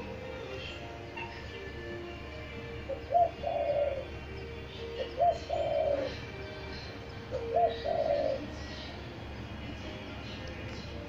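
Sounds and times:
dove cooing: 2.6s - 9.1s.

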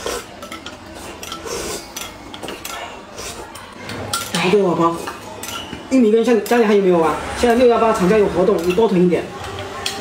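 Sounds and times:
spoons scraping glass cups: 0.0s - 3.5s.

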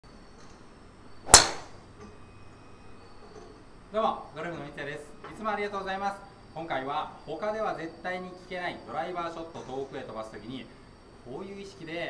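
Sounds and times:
golf club striking ball: 1.3s - 1.9s.

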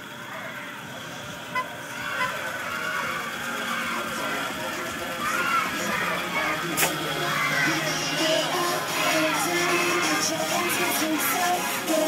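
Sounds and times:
bus engine running: 0.0s - 12.0s.

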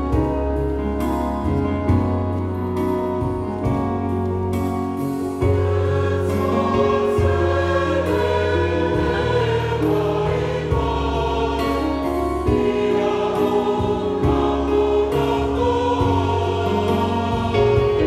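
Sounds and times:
congregation singing a hymn: 4.5s - 18.0s.

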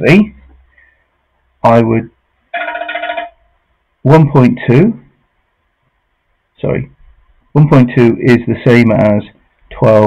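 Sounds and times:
electronic ringtone trill: 2.6s - 3.5s.

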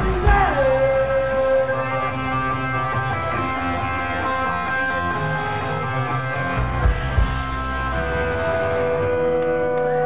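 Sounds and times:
electric guitars sustained chord: 0.0s - 10.0s.

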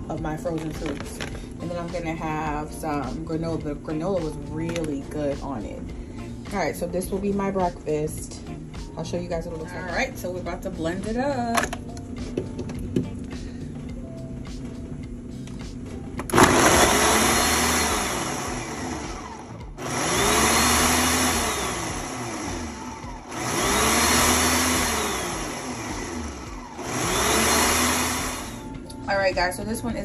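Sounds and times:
blender motor crushing frozen fruit: 0.5s - 1.5s, 16.2s - 28.8s.

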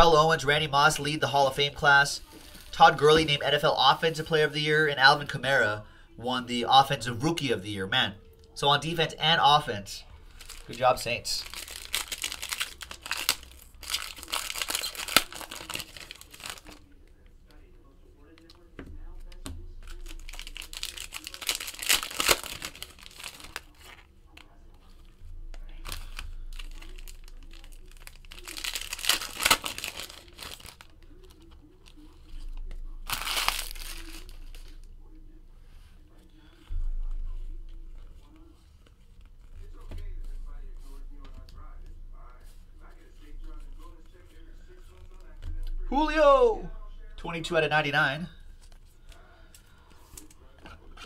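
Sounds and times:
foil packs crinkling: 10.3s - 16.9s, 19.8s - 34.9s.

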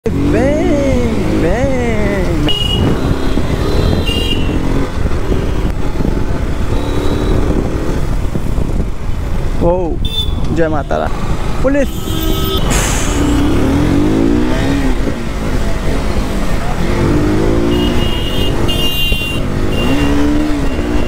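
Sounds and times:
person speaking: 0.1s - 2.7s
wind noise: 0.2s - 11.6s.

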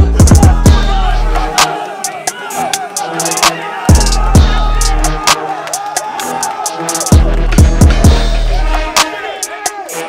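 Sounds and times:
hi-hats: 0.0s - 10.0s.

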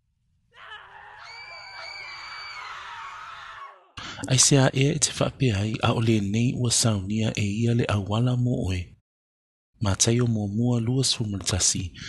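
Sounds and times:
people screaming: 0.5s - 4.0s.

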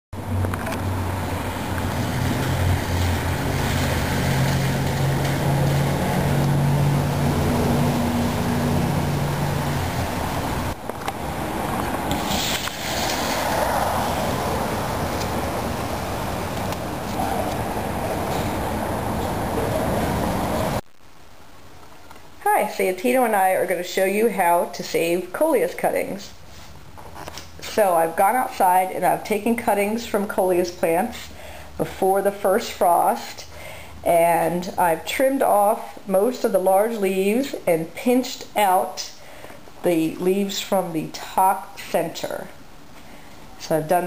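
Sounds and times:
road traffic noise: 0.2s - 20.8s
vehicle engine humming: 0.2s - 20.8s.

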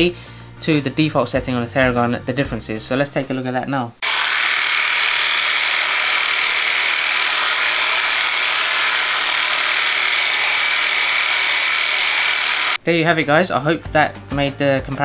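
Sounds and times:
massage gun buzzing: 4.0s - 12.8s.

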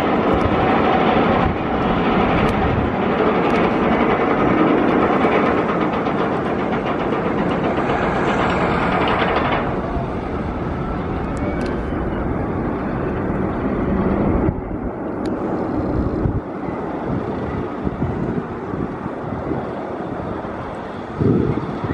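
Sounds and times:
roller coaster rumble and clatter: 0.0s - 21.9s.

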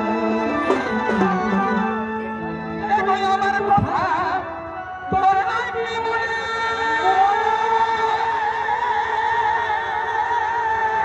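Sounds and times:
melodic instrument holding notes: 0.0s - 6.4s.

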